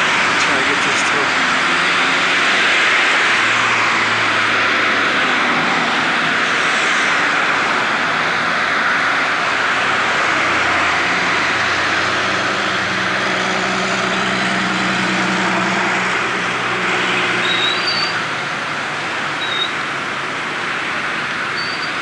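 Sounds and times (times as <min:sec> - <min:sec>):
passing engine hum: 0:00.0 - 0:19.3
street traffic rushing: 0:00.0 - 0:22.0.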